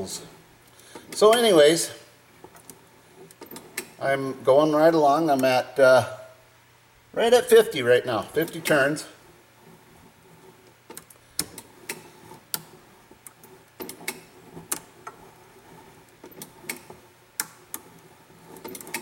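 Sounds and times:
coil winder clicking: 16.2s - 17.9s.

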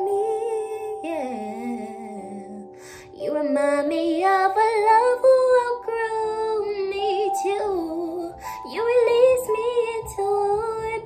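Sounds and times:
backing track of sustained chords: 0.0s - 11.0s.

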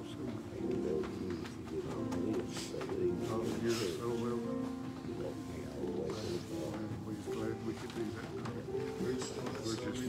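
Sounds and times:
murmured voices talking quietly: 0.0s - 10.0s
soft music with held notes: 0.0s - 10.0s.

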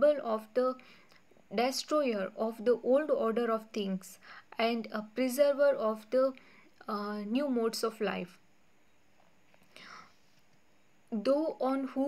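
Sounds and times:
faint breath: 0.8s - 1.2s, 4.2s - 4.6s, 6.4s - 6.8s, 9.6s - 10.4s.

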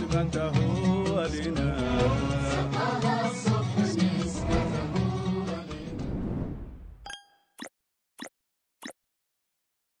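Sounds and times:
pop sound effects: 7.0s - 9.0s.

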